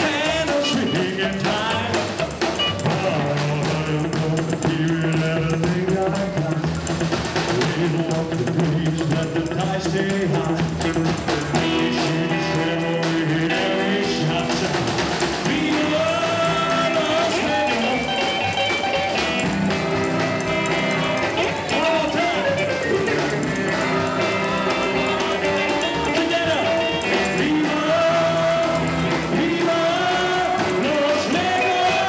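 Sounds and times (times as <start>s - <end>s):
man singing: 0.0s - 18.7s, 21.4s - 32.0s
rock and roll band playing: 0.0s - 32.0s.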